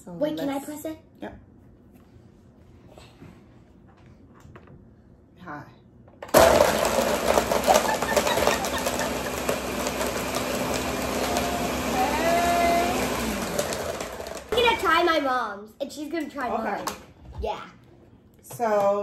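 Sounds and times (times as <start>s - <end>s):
ice clattering in blender: 6.3s - 14.8s
blender running: 6.3s - 14.9s.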